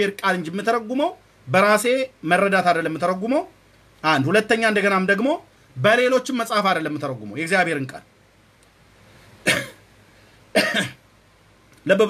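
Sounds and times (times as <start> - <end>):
man coughing: 9.4 - 9.8, 10.5 - 11.0.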